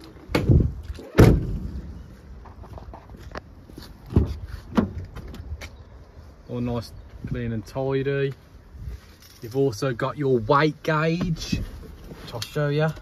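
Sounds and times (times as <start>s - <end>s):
van doors banging shut: 0.3s - 1.9s, 4.1s - 5.4s.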